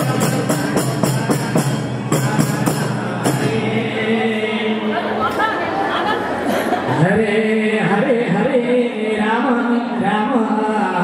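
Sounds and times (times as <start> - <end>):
drums: 0.0 - 4.0
voices singing a devotional song: 0.9 - 11.0.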